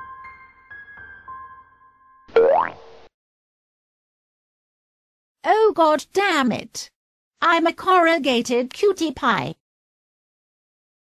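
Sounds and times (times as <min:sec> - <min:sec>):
rising boing sound effect: 0:02.3 - 0:03.0.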